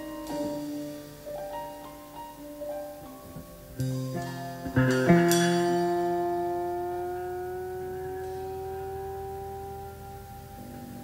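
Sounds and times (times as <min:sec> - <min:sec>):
piano chord ringing: 0:00.0 - 0:11.0.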